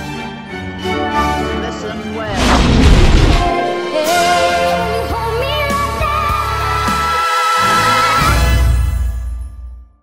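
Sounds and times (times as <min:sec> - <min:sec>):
orchestral music: 0:00.0 - 0:09.6
booming explosion: 0:02.3 - 0:03.6.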